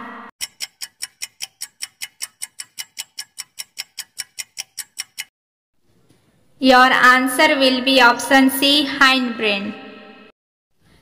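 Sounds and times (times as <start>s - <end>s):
clock-like timer ticking: 0.4s - 5.3s.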